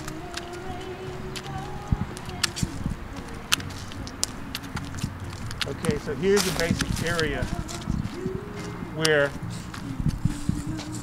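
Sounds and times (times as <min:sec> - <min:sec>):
footsteps on dry leaves: 0:00.0 - 0:11.0.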